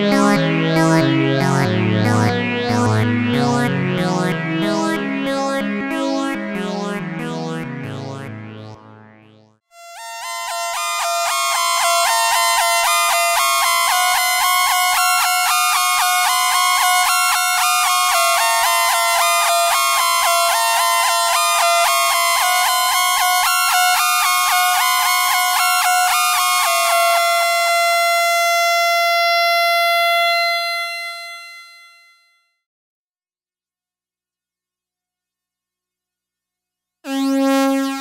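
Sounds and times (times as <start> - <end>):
held synthesizer note: 0.0 - 13.0
synthesizer arpeggio with delay echoes: 0.0 - 30.1.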